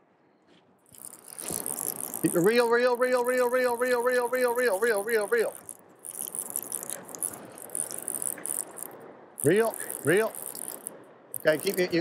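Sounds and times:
fly reel ratchet clicking: 0.9 - 12.0.

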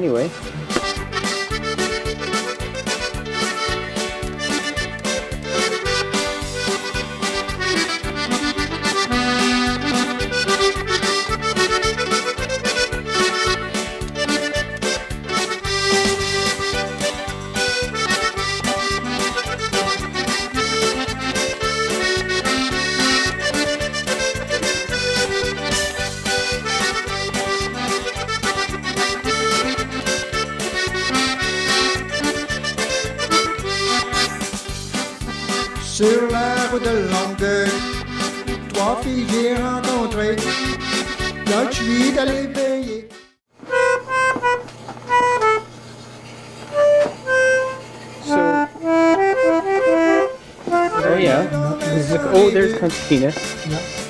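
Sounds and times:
lively accordion tune: 0.0 - 54.0.

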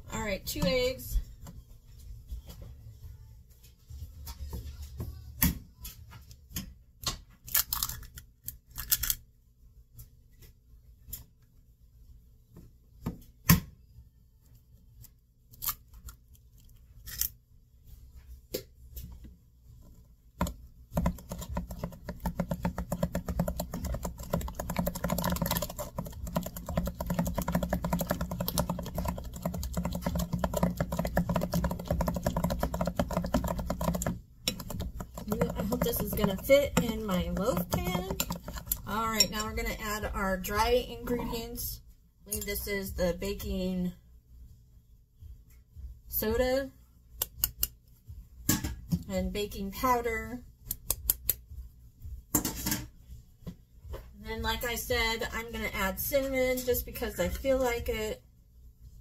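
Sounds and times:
spatula stirring and scraping glass: 21.0 - 39.6.

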